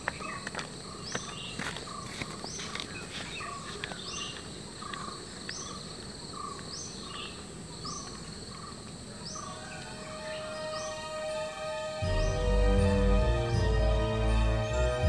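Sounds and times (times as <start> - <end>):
lower animal call: 9.4 - 14.8
soft music: 9.4 - 15.0
high drone: 9.9 - 15.0.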